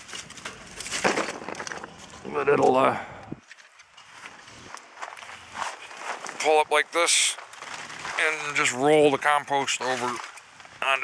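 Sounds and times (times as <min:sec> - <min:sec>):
footsteps in dry leaves: 0:04.0 - 0:08.8.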